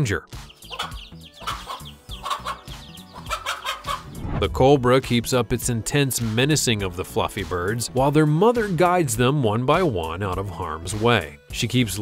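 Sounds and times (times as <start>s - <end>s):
chicks peeping: 0.3s - 4.2s
hen clucking: 0.4s - 4.1s.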